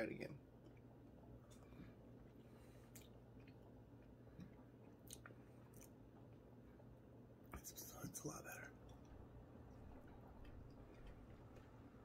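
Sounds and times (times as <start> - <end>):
person chewing: 2.8 - 6.4
soft mouth clicks: 2.9 - 3.6, 4.4 - 6.0.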